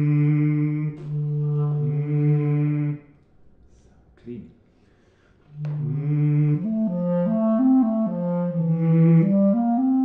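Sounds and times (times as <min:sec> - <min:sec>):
clarinet holding low note: 0:00.0 - 0:03.0, 0:05.6 - 0:10.0
person singing into clarinet: 0:00.0 - 0:03.1, 0:05.6 - 0:10.0.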